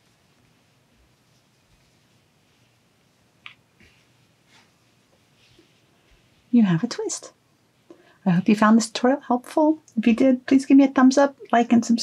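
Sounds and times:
fabric rustling: 0.0 - 8.8.

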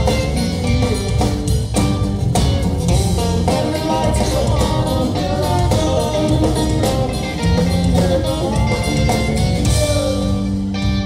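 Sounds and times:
drum kit: 0.0 - 11.0
guitar: 0.0 - 11.0
rock band playing: 0.0 - 11.0.

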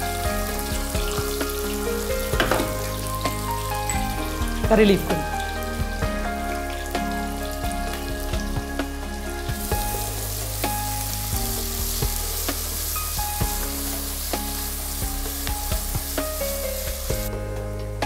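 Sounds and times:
vegetables sizzling in hot oil: 0.0 - 17.3.

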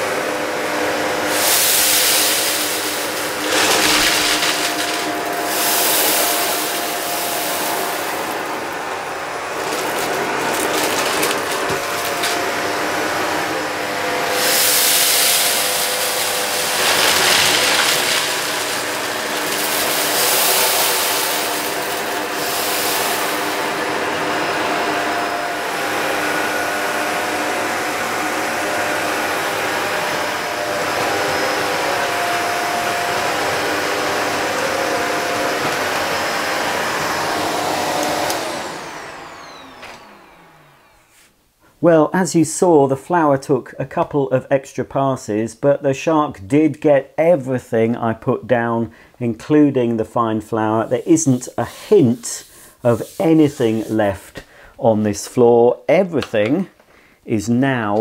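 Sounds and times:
vacuum cleaner running: 0.0 - 41.4, 50.6 - 54.6
vacuum motor winding down: 0.1 - 41.1.

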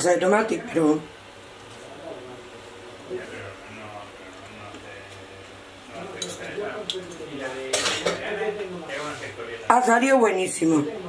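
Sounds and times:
cutlery clinking on a plate: 6.2 - 6.6, 7.7 - 8.2.

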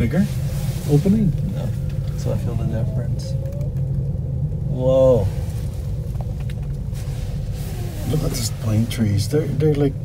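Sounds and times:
wind and travel rumble: 0.0 - 10.0.

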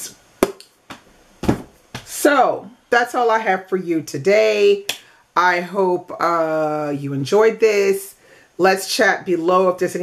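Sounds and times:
book tapping on surface: 0.4 - 2.1
dull knock of book set down: 0.4 - 2.1.

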